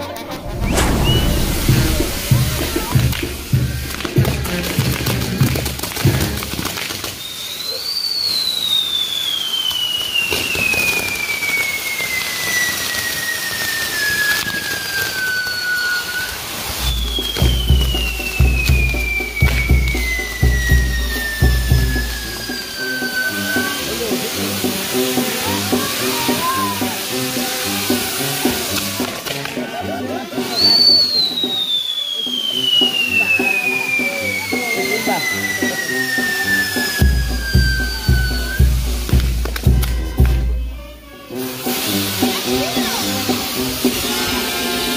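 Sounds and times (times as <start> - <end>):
music: 0.0 - 6.9, 16.8 - 44.9
descending firework whistles: 0.0 - 40.2
fireworks sparking hiss: 0.0 - 44.9.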